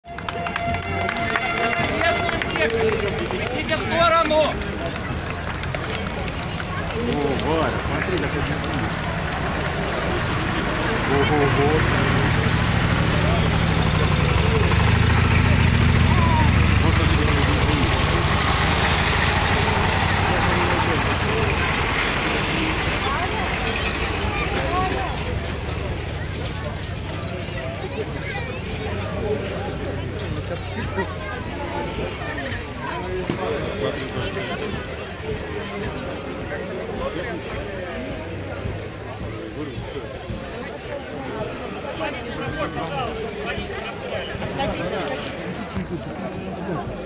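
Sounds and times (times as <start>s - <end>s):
crowd chatter: 0.0s - 47.0s
vehicle engines rumbling past: 0.1s - 47.0s.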